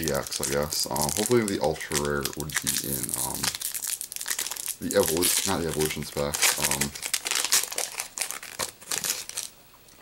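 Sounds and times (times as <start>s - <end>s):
foil wrapper crinkling and tearing: 0.0s - 9.6s.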